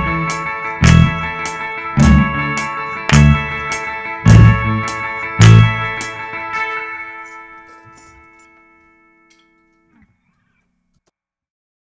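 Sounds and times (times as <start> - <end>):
guitar chord ringing: 0.0 - 10.5
guitar strings muted with scrape: 2.0 - 8.6.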